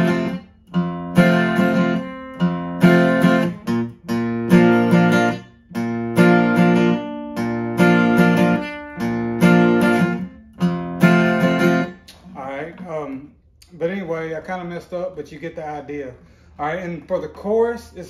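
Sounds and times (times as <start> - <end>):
acoustic guitar strumming: 0.0 - 13.2.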